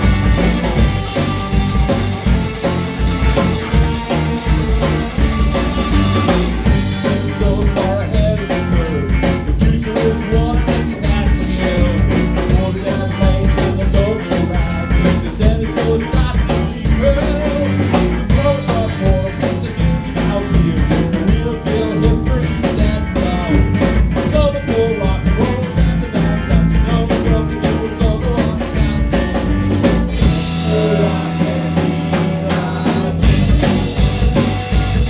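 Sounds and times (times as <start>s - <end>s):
rock band playing: 0.0s - 35.0s
man singing: 5.8s - 35.0s.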